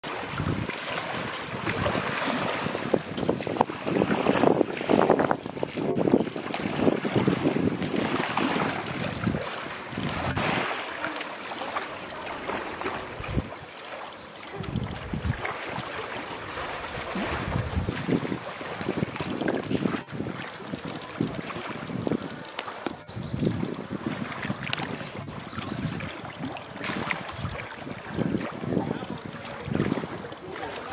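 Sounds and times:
water splashing and sloshing: 0:00.0 - 0:30.9
wind noise on microphone: 0:00.1 - 0:10.8, 0:12.8 - 0:13.7, 0:14.5 - 0:30.9.

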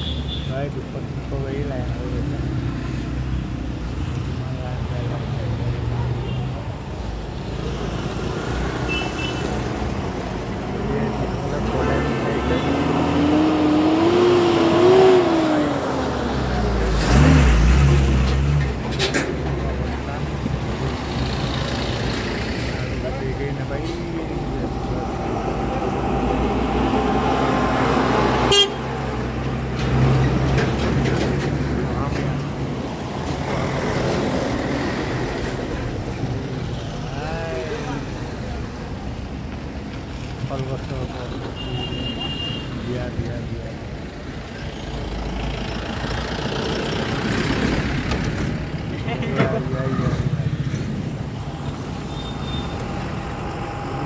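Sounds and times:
car horns: 0:00.0 - 0:00.6, 0:08.8 - 0:09.6, 0:28.4 - 0:29.0, 0:41.5 - 0:42.9, 0:52.0 - 0:52.9
road traffic passing: 0:00.0 - 0:54.0.

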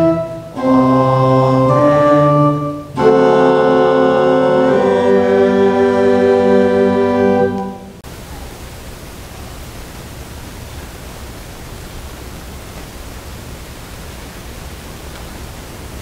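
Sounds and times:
steady hiss: 0:07.9 - 0:16.0.

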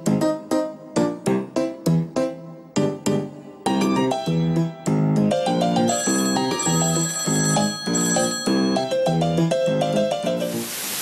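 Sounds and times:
upbeat jingle music: 0:03.8 - 0:10.6.

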